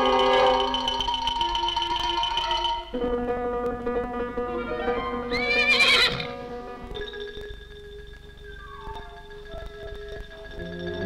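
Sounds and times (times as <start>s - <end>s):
film music: 0.0s - 11.0s
foal whinnying: 4.7s - 6.4s.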